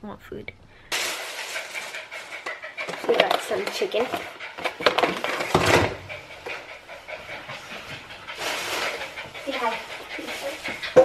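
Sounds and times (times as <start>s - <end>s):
close rustling and handling: 0.9s - 5.9s.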